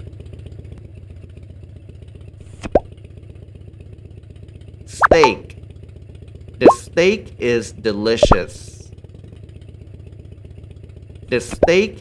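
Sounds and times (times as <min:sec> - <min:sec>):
cartoon motorcycle engine idling: 0:00.0 - 0:12.0
cartoon plop with falling pitch: 0:04.9 - 0:05.4, 0:06.6 - 0:06.9, 0:08.2 - 0:08.6.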